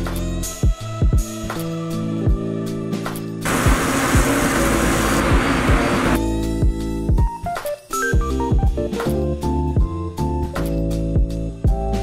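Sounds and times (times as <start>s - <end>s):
music with kick drum beat: 0.0s - 1.7s, 2.3s - 2.7s, 5.3s - 12.0s
loud even hiss: 3.4s - 6.2s.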